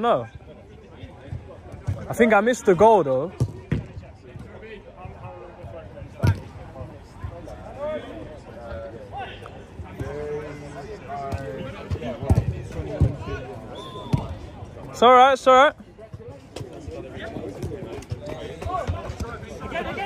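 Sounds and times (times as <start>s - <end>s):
players shouting in the distance: 17.0s - 20.0s.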